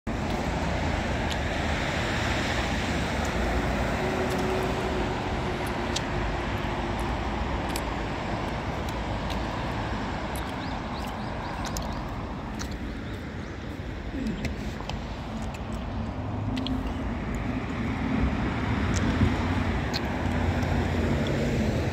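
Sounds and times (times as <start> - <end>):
traffic rumble: 0.1 - 21.9.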